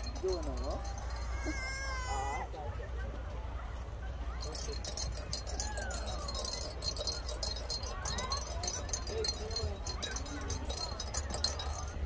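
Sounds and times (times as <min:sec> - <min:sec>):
metallic jingling: 0:00.0 - 0:01.9, 0:04.3 - 0:12.0
faint voices: 0:00.0 - 0:12.0.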